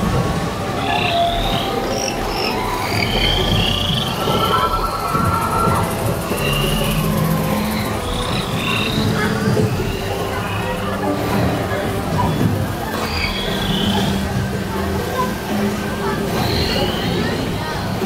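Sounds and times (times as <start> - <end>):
frog-like croaks: 0.8 - 9.6
chirping creature calls: 0.8 - 10.8.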